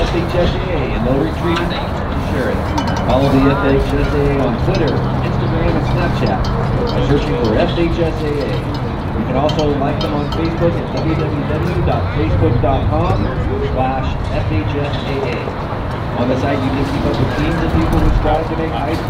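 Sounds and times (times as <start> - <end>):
people talking indistinctly: 0.0 - 19.0.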